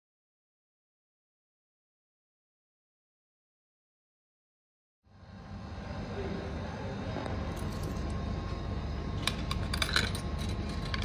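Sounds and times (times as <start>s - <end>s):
coin clicking into slot: 9.3s - 11.0s.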